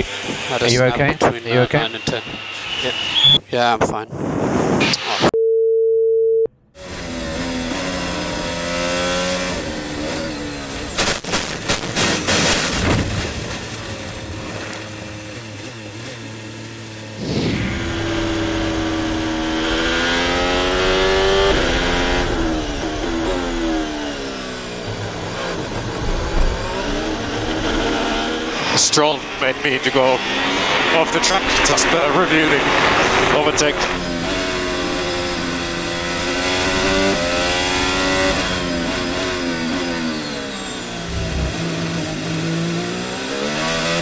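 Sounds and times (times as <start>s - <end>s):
racing car engine revving: 6.8s - 44.0s.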